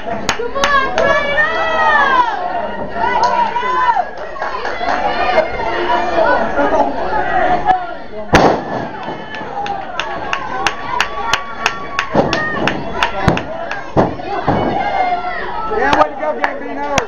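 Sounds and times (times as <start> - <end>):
crowd chatter and shouting: 0.0 - 17.0.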